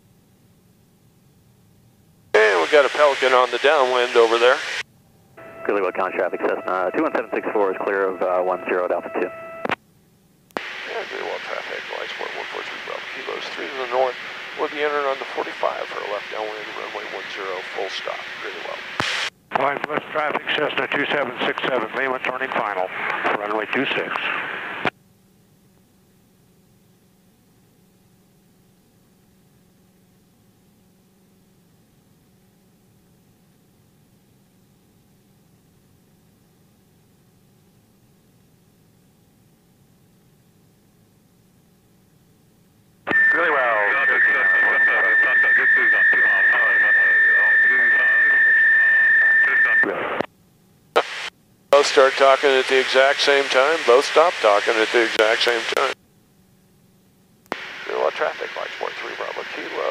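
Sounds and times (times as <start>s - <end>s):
faint low hum: 0.0s - 59.9s
radio hiss: 2.4s - 4.8s, 5.4s - 9.8s, 10.6s - 24.9s, 43.1s - 50.3s, 50.9s - 56.0s, 57.5s - 59.9s
high-pitched radio squeal: 5.4s - 9.6s, 43.1s - 50.2s
short radio bursts: 51.0s - 52.6s.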